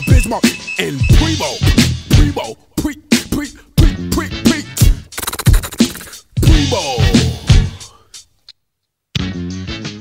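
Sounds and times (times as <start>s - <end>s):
hip hop drum beat: 0.0s - 8.0s
turntable scratching: 5.1s - 7.3s.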